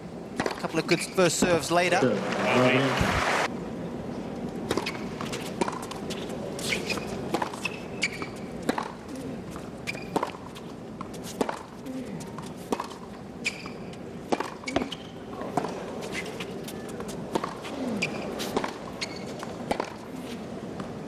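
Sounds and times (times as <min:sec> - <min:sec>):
racquets striking tennis ball: 0:00.3 - 0:00.7, 0:04.7 - 0:21.0
sneakers squeaking on court: 0:04.7 - 0:09.0, 0:09.8 - 0:11.7, 0:12.3 - 0:20.1.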